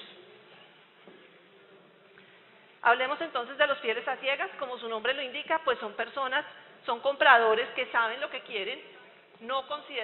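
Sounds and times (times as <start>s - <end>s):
faint hiss and hum: 0.0s - 10.0s.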